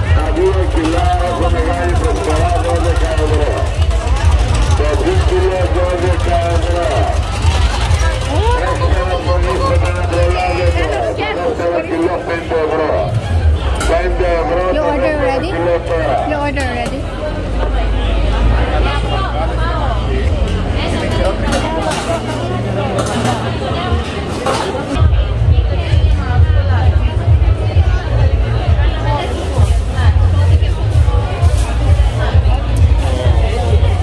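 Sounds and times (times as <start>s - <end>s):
crowd chatter: 0.0s - 34.0s.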